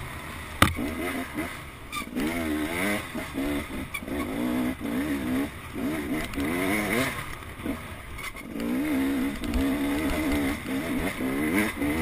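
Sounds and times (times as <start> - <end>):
dirt bike engine revving: 0.6 - 12.0.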